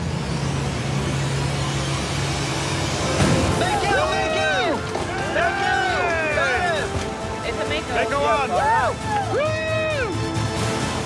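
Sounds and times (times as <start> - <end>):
boat engine humming: 0.0 - 11.0
wind: 0.0 - 11.0.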